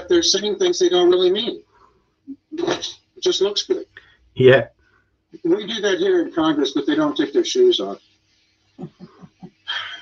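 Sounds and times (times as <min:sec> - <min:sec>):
man chuckling quietly: 0:08.8 - 0:10.0.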